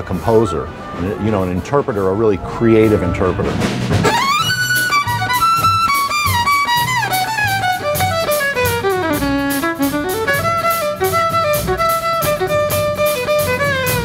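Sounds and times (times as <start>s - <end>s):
orchestra accompaniment: 0.0s - 14.0s
jazz violin solo: 0.7s - 14.0s
drum kit cymbal beat: 2.6s - 14.0s.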